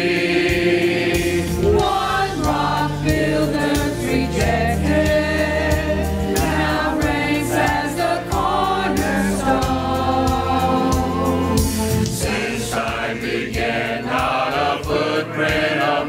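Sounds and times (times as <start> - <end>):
choir singing a hymn: 0.0 - 16.0
instrumental accompaniment: 0.0 - 16.0.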